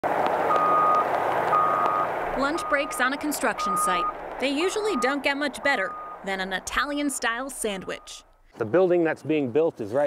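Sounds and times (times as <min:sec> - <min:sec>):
machinery noise: 0:00.3 - 0:08.3
backup alarm beeping: 0:00.5 - 0:08.4.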